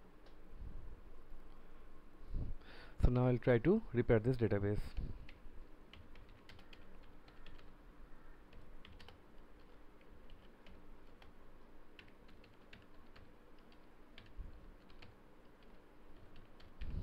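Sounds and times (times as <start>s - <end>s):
computer keyboard typing: 5.3s - 7.8s, 8.5s - 11.4s, 12.0s - 17.0s.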